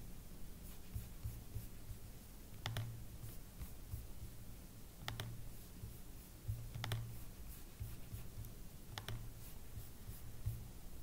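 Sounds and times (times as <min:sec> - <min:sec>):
faint low room hum: 0:00.0 - 0:11.0
computer mouse click: 0:02.5 - 0:03.0, 0:05.0 - 0:05.4, 0:06.7 - 0:07.2, 0:08.4 - 0:09.3
soft low thumps: 0:05.8 - 0:06.9.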